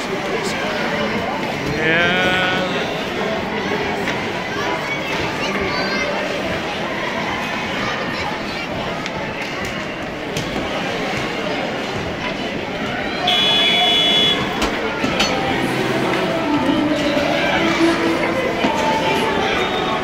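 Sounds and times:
children and spectators calling out: 0:11.7 - 0:20.0
referee's whistle: 0:13.3 - 0:14.6.

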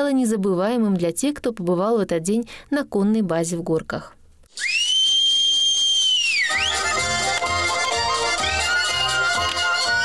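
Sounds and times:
long piercing whistle: 0:04.5 - 0:07.2, 0:08.2 - 0:10.0
accordion folk music: 0:06.5 - 0:10.0.

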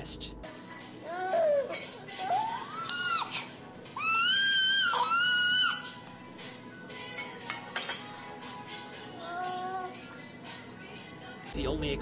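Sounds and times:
high-pitched wailing cries: 0:01.1 - 0:06.0.

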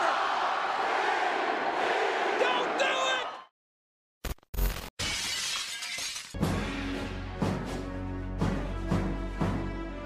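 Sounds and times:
glass breaking crash: 0:04.6 - 0:06.4.

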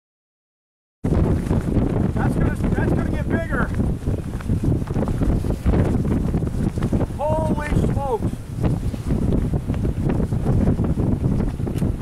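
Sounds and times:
wind buffeting microphone: 0:01.0 - 0:12.0.

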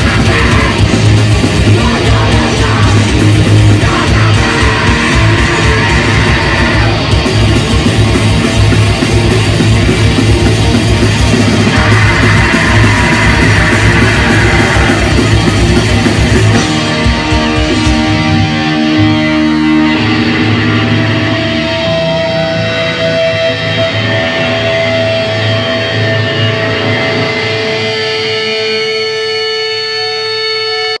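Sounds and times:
distorted electric guitars: 0:00.0 - 0:31.0.

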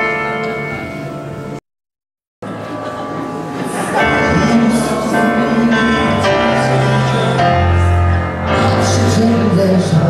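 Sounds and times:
live worship band music: 0:02.5 - 0:10.0.

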